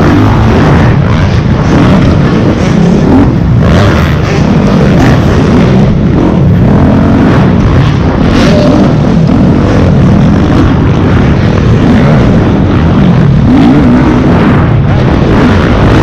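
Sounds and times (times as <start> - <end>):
motocross bike engine revving: 0.0 - 16.0.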